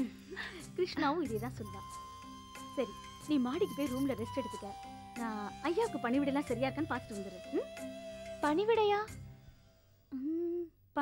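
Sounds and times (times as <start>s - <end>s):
faint background music: 0.0s - 11.0s
woman humming: 10.1s - 10.8s.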